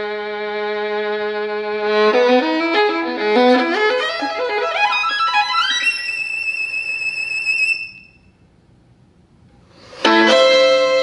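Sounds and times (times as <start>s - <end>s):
solo violin playing: 0.0s - 8.2s, 10.0s - 11.0s.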